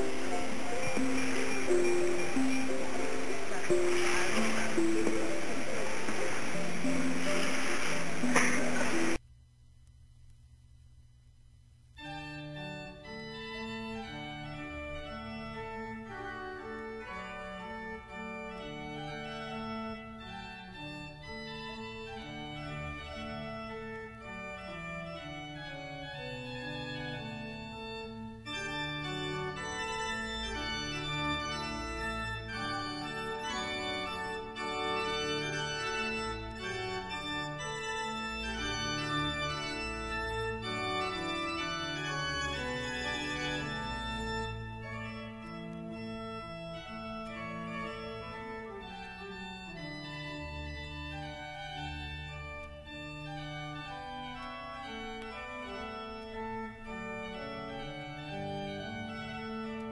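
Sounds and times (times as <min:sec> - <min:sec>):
organ playing held chords: 0:00.0 - 0:09.2, 0:12.0 - 0:59.9.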